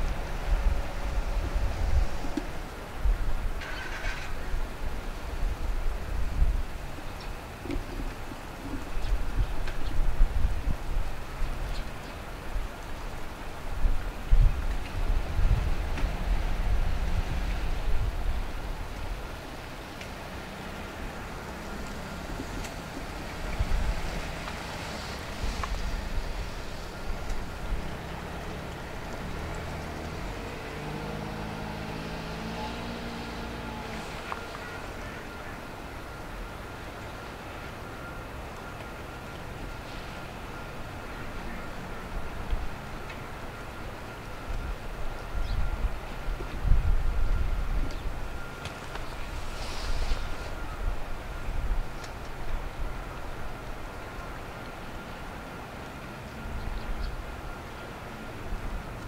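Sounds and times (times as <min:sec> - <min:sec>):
jet engine whine and rumble: 0:35.3 - 0:59.0.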